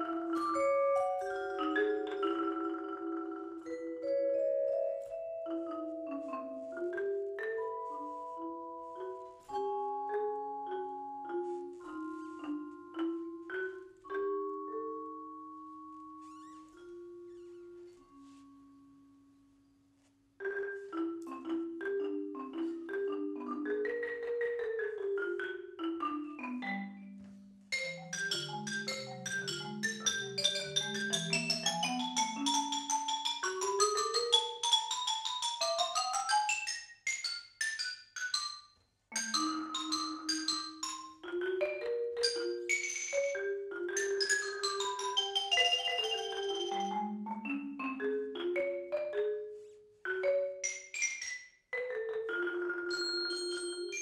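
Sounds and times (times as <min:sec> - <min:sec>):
marimba duo playing: 0:00.0 - 0:19.0, 0:20.4 - 0:54.0.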